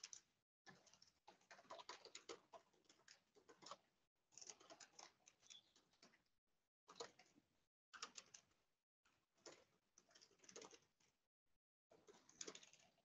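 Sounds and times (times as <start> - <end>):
fast typing on keyboard: 0.0 - 3.8, 4.4 - 6.1, 9.4 - 11.0, 11.9 - 13.0.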